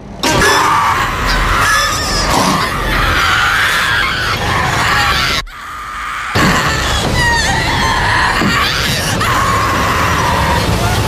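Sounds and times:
woman screaming: 0.4 - 10.8.

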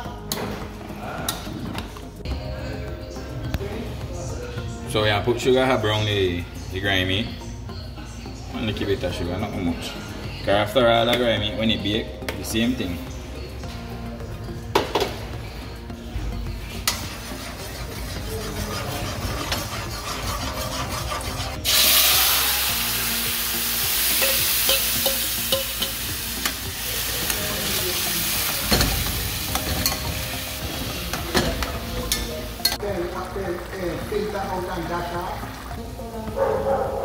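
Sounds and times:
meat sizzling in hot oil: 21.6 - 31.8.

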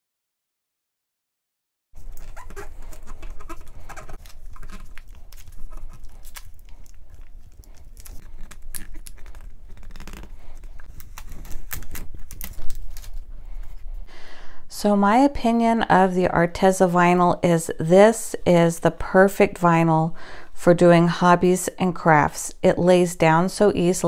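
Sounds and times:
short squeaks: 2.0 - 4.9
vinyl crackling and crinkling: 2.0 - 14.0.

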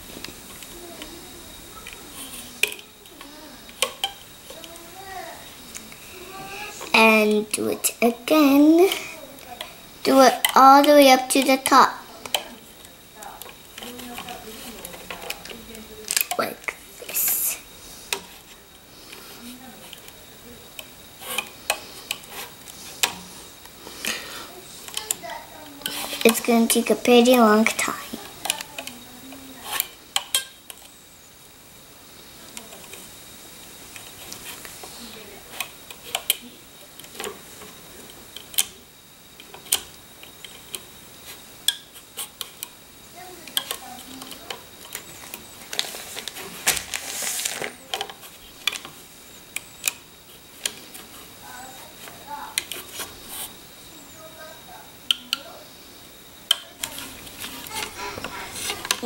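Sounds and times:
brief rustle: 45.7 - 48.4.

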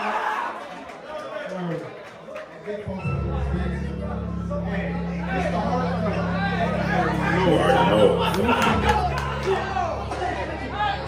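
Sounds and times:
crowd yelling: 0.0 - 1.8, 5.2 - 11.0
hip-hop beat with bass: 3.1 - 11.0.

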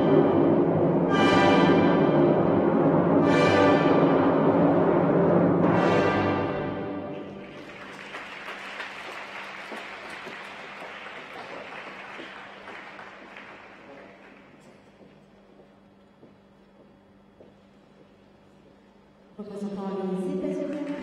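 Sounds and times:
orchestral music: 0.0 - 8.6
crowd applauding: 7.1 - 14.8, 20.7 - 21.0.

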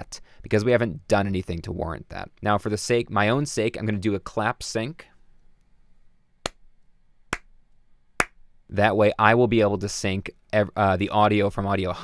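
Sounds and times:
sharp hand claps: 6.4 - 6.6, 7.3 - 7.5, 8.2 - 8.4.

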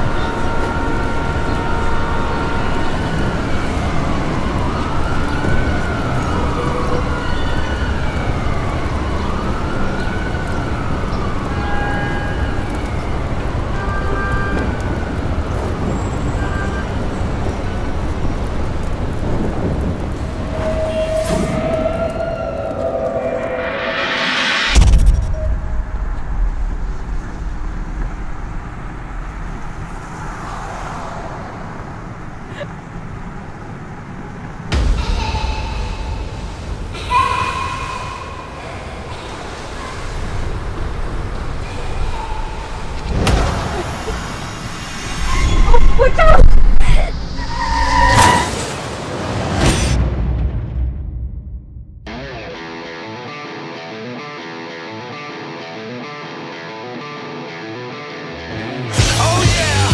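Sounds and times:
sharp hit: 23.6 - 28.4, 34.7 - 39.5.

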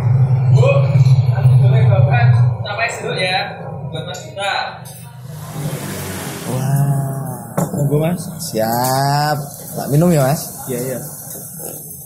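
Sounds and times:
man's voice murmuring vowels: 6.5 - 7.8.

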